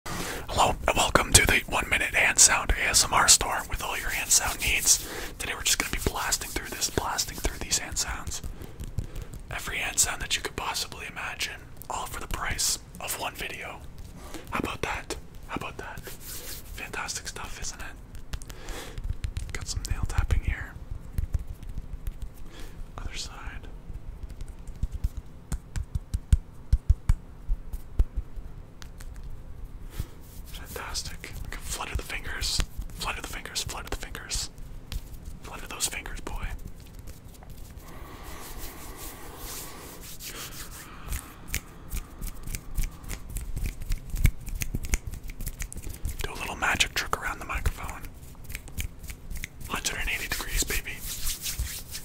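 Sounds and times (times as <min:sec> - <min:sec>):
hand rustling: 0:00.6 - 0:10.5, 0:29.9 - 0:52.0
finger taps and flicks: 0:18.1 - 0:20.4, 0:21.1 - 0:22.4, 0:24.2 - 0:29.4, 0:41.1 - 0:46.3, 0:47.6 - 0:49.7.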